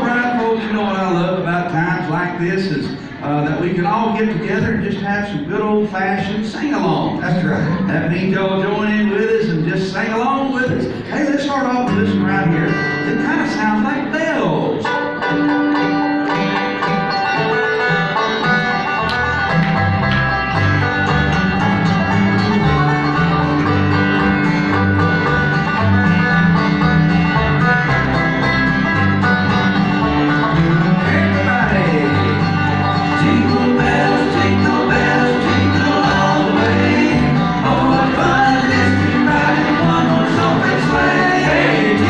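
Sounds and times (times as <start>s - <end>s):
plucked acoustic guitar: 0.0s - 42.0s
upright double bass: 0.0s - 42.0s.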